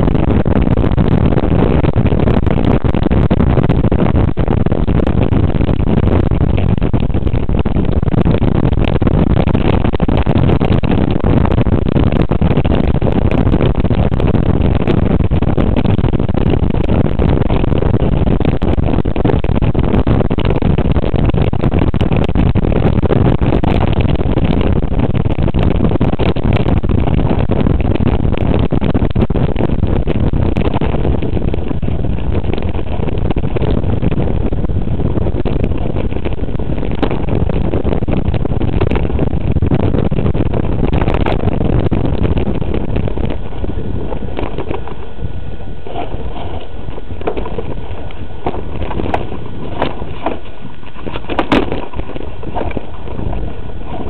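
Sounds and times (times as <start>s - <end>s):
bike rumbling on rough dirt trail: 0.0s - 54.0s
wind on microphone: 0.0s - 54.0s.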